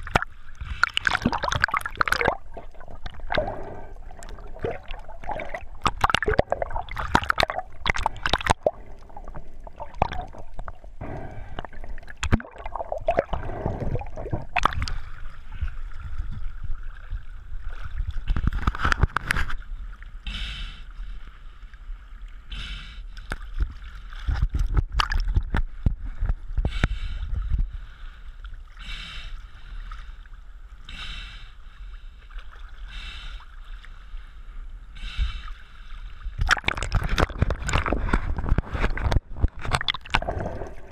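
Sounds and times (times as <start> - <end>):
water gurgles: 0.0 - 20.2, 36.3 - 40.9
muffled underwater rumble: 0.0 - 33.4
water sloshing against camera housing: 36.4 - 40.3.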